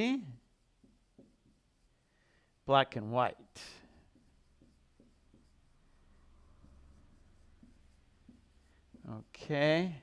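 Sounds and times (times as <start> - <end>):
marker squeaking on whiteboard: 0.2 - 2.0, 3.5 - 10.0.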